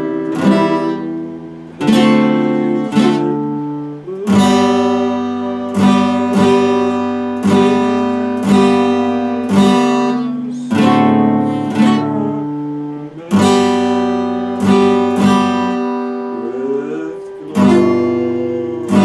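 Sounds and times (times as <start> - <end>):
acoustic guitar strummed slowly: 0.0 - 19.0.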